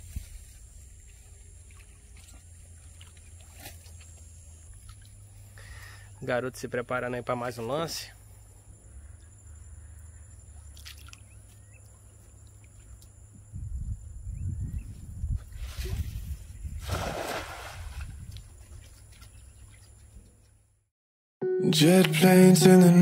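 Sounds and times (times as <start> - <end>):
wind rumble on microphone: 0.0 - 1.2, 13.2 - 19.1
water sloshing and splashing: 1.0 - 5.6, 10.6 - 13.0, 16.8 - 20.0.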